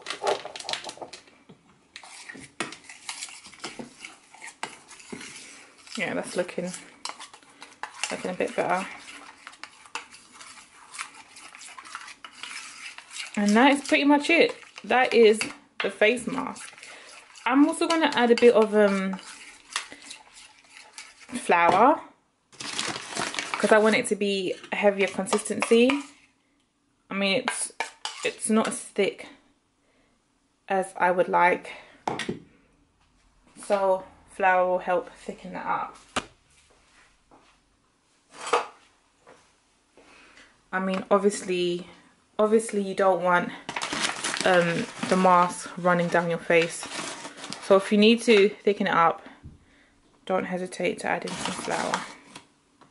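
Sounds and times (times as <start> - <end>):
spoon stirring thick paste: 1.9 - 21.9, 22.6 - 26.4, 27.3 - 28.9, 43.6 - 48.6, 51.1 - 52.4
kitchen items scraping on counter: 2.0 - 21.9, 22.7 - 26.3, 27.4 - 28.9, 38.3 - 38.8, 43.7 - 48.5, 51.1 - 52.4.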